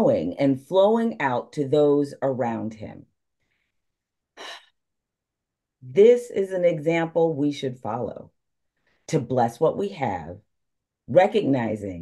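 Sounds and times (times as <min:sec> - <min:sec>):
woman speaking: 0:00.0 - 0:03.1, 0:05.8 - 0:08.3, 0:09.1 - 0:10.4, 0:11.1 - 0:12.0.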